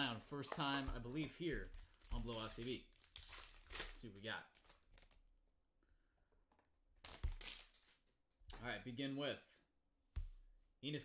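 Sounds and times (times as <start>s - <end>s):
foil wrapper crinkling: 1.4s - 5.2s.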